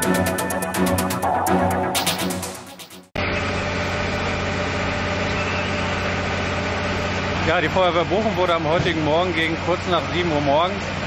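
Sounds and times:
vehicle engine idling: 3.2s - 11.0s.

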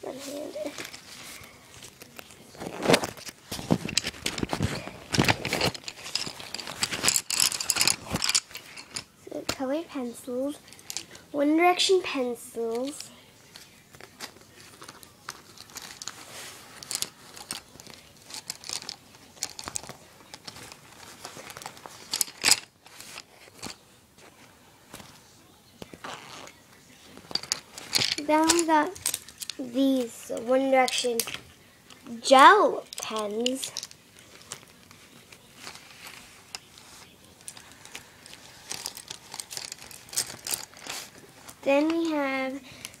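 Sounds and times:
pencils clicking together: 1.8s - 9.6s, 10.7s - 11.2s, 16.8s - 23.8s, 27.2s - 29.6s, 30.3s - 31.4s, 32.8s - 35.0s, 37.4s - 43.0s
plastic pouch crinkling: 35.4s - 42.0s.

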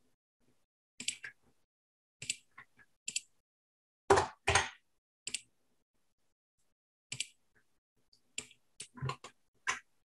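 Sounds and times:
computer mouse clicking: 2.2s - 3.3s, 5.3s - 5.5s, 7.1s - 7.4s.

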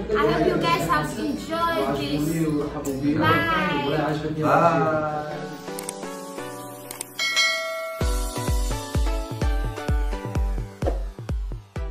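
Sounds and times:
bell-like notification chime: 7.2s - 8.7s
music with heavy bass beat: 8.0s - 11.9s.

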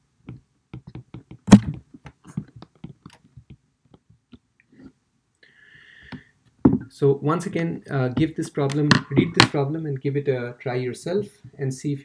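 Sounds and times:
stylus tapping on glass screen: 0.3s - 4.0s.

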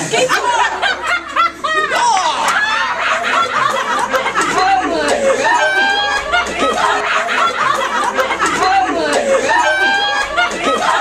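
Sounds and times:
teenagers laughing: 0.0s - 11.0s.

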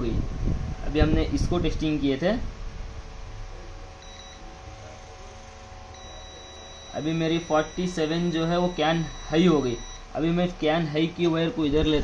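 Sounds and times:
multimeter continuity buzzer beeping: 4.0s - 11.3s.

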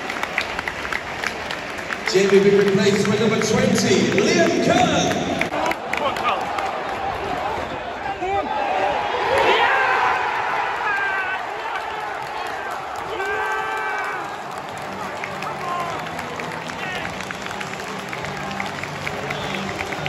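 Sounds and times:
stadium crowd cheering: 0.0s - 20.0s.

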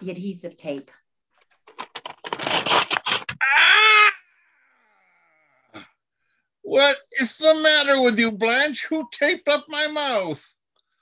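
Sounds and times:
rattling crackling noise: 1.4s - 3.4s.

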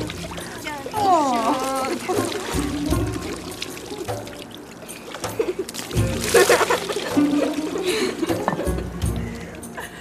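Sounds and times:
background music: 0.0s - 10.0s
water trickling and splashing: 0.0s - 10.0s.

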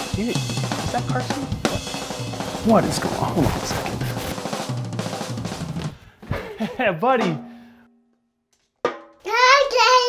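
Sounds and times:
toddler singing high note: 9.3s - 10.0s.

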